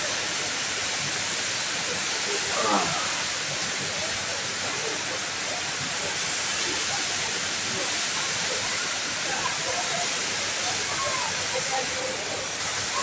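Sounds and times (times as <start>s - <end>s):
faint crowd voices: 0.0s - 13.0s
indoor waterfall rushing: 0.0s - 13.0s.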